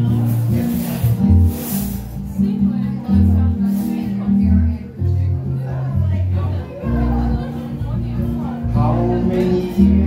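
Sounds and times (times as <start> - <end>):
acoustic guitar strumming: 0.0 - 10.0
electric bass: 0.0 - 10.0.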